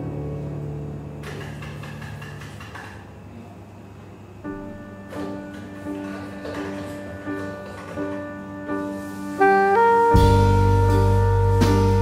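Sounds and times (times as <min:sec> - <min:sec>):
coffee shop ambience: 0:00.0 - 0:12.0
low piano note: 0:04.5 - 0:12.0.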